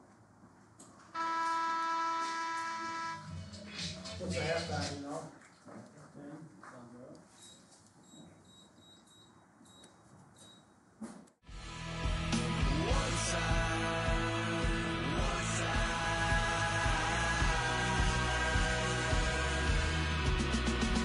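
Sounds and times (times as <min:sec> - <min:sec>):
scoreboard horn blast: 0:01.1 - 0:03.6.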